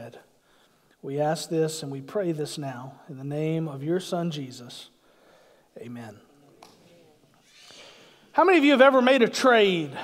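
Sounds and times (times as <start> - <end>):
soft hiss: 0.0 - 10.0
man's voice: 8.3 - 10.0.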